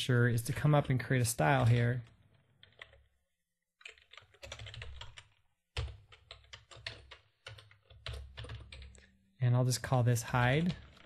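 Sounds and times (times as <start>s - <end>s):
typing on computer keyboard: 1.6s - 3.1s, 3.8s - 9.1s, 10.6s - 11.0s.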